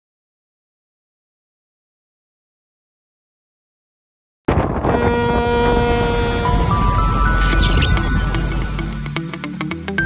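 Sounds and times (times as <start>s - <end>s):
ship's horn long note: 4.8s - 7.2s.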